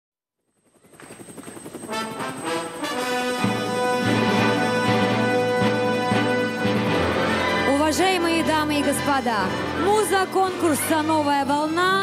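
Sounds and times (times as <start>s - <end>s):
helicopter rotor chopping: 0.5s - 12.0s.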